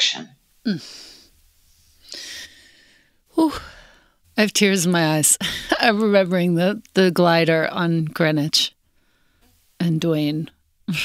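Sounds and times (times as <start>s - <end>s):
woman sighing: 0.6s - 1.3s.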